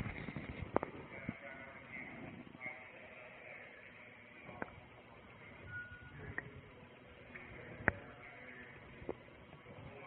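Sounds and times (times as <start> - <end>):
low background noise: 0.0 - 10.0.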